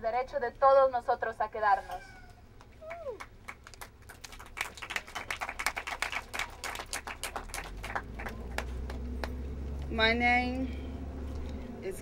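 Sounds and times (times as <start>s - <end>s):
small group clapping: 2.6s - 9.4s.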